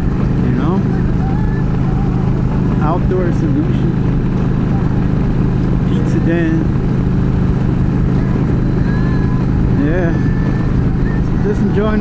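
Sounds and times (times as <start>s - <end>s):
motorcycle engine cruising: 0.0s - 12.0s
wind and road noise: 0.0s - 12.0s.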